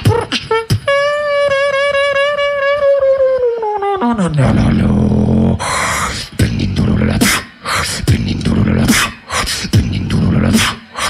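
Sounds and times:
faint beatbox clicks: 0.0s - 2.6s, 6.2s - 11.0s
beatboxer holding pitched note: 0.0s - 11.0s.

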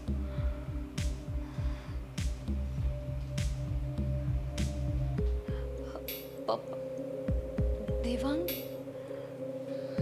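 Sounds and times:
low heartbeat-like thuds: 0.0s - 5.6s.

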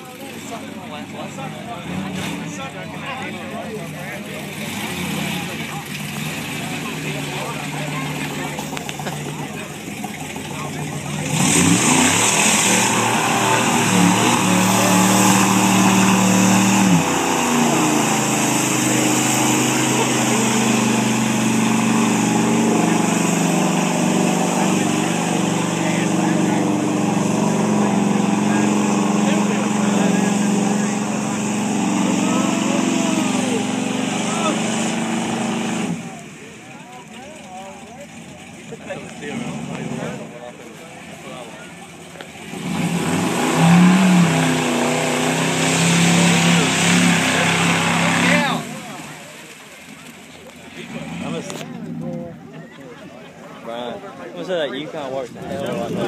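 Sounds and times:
truck engine revving: 0.0s - 56.0s.

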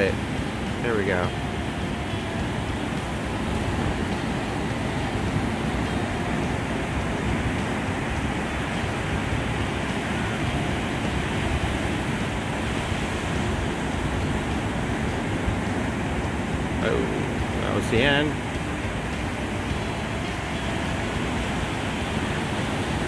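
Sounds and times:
ocean surf breaking: 0.0s - 23.0s
wind: 0.0s - 23.0s.

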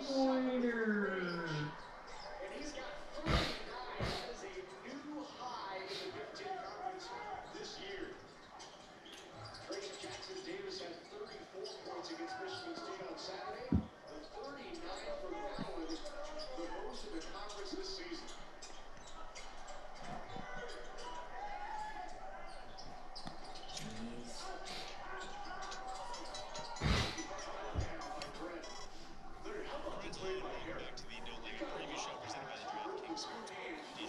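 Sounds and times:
basketball broadcast voices: 0.0s - 34.0s.

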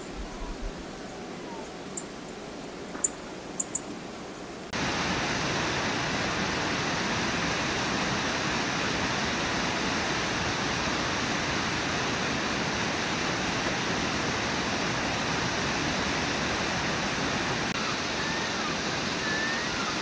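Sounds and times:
river water rushing: 4.7s - 20.0s.

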